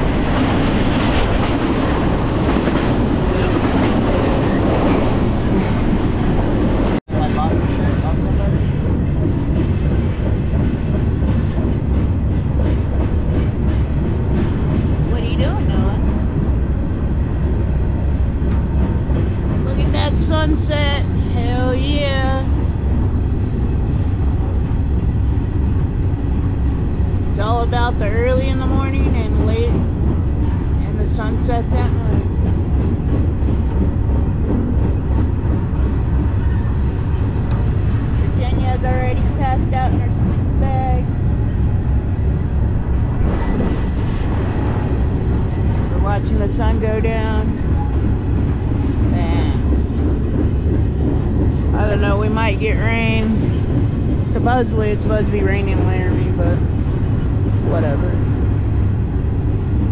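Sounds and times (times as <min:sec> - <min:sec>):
freight train rumble and rattle: 0:00.0 - 0:59.9
wind noise: 0:00.0 - 0:59.9.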